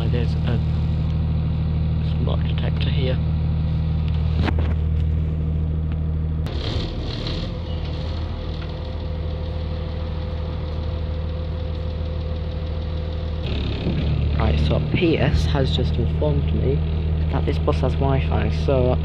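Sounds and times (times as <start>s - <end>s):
bus engine drone: 0.0s - 19.0s.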